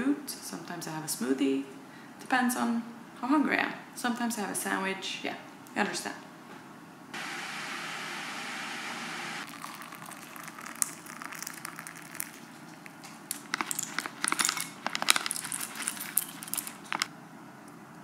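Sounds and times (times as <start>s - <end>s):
water pouring into a teacup: 9.4s - 12.5s
seeds rattling onto a plate: 9.5s - 17.1s.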